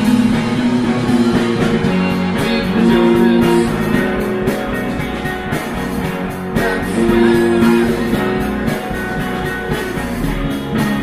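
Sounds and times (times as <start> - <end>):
guitar long held notes: 0.0 - 11.0
live rock band playing: 0.0 - 11.0.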